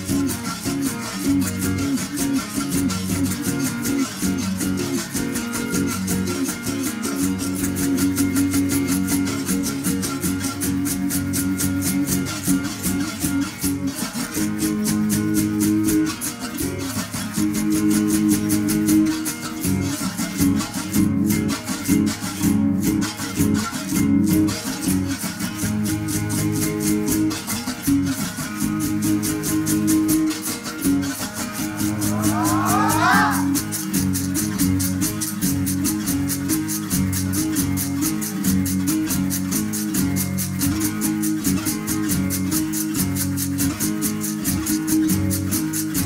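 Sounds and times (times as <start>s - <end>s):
berimbau ensemble playing: 30.4s - 33.9s.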